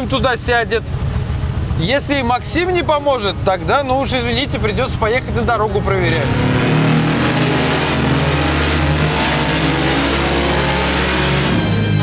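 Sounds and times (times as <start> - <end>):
background music: 6.0 - 12.0
car engine revving hard: 6.0 - 12.0.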